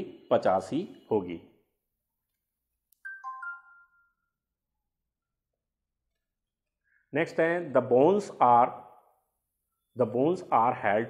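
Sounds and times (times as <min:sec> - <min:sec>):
electronic two-note chime: 0:03.0 - 0:04.4.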